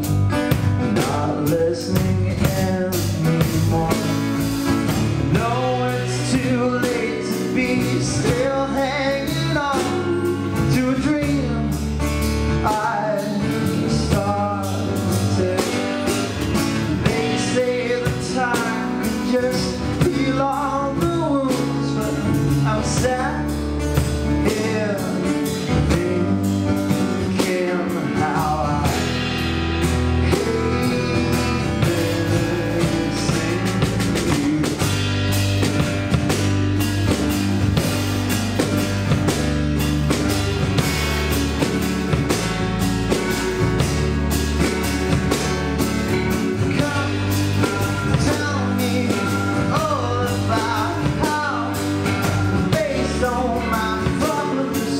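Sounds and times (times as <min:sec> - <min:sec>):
live band playing blues-pop: 0:00.0 - 0:54.9.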